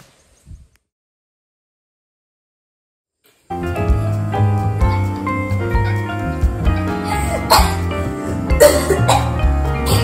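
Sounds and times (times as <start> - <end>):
background music: 3.4 - 10.0
girl coughing: 7.3 - 7.9, 8.6 - 10.0.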